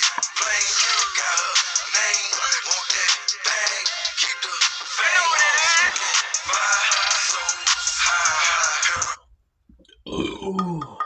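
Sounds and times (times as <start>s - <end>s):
man burping: 10.0s - 11.0s.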